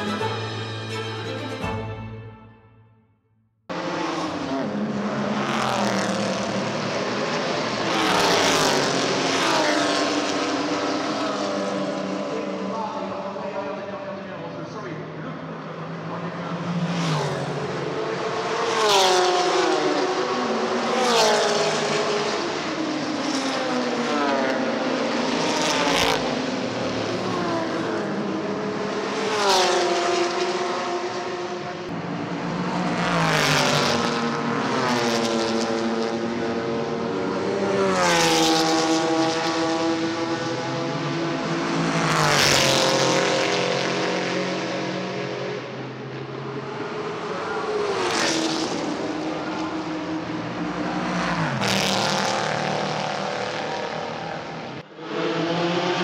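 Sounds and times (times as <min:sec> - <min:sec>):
racing cars passing at speed: 0:03.7 - 0:56.0.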